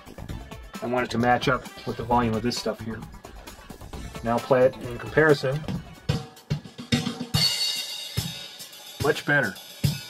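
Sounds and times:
kick and snare drum beat: 0.0 - 10.0.

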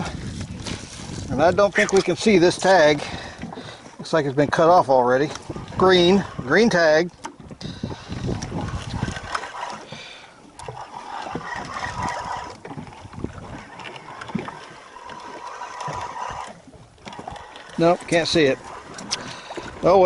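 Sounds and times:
water sloshing against hull: 0.0 - 20.0.

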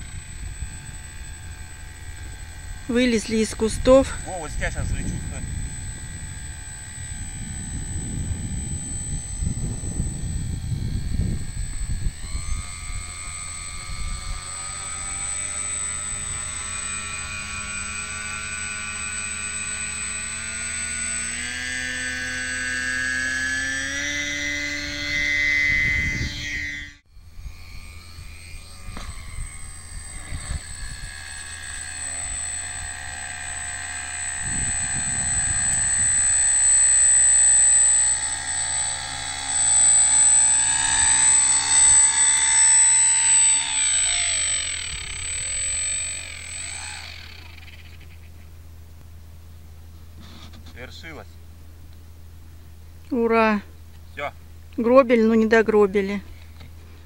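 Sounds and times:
electric motor and propeller whining: 0.0 - 57.0.

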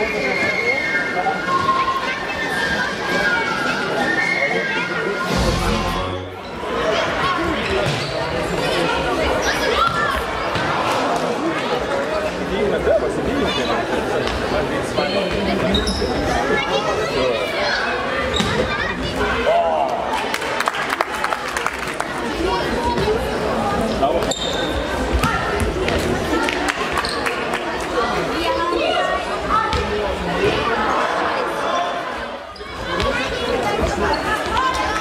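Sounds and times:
spectators chattering: 0.0 - 35.0
short high tone: 5.2 - 6.5.

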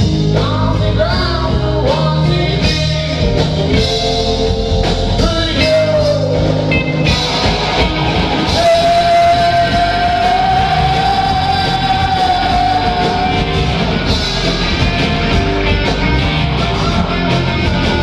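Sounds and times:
rock band playing live: 0.0 - 18.0.

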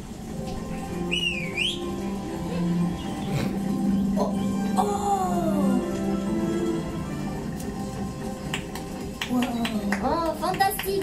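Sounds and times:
soundtrack music: 0.0 - 11.0
swooping whistle sound effect: 1.1 - 2.0.

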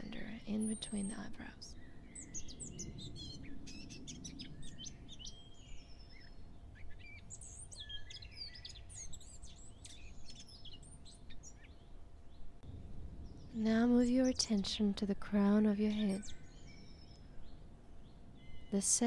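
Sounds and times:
low background hiss: 0.0 - 19.0
small birds chirping: 0.0 - 19.0.

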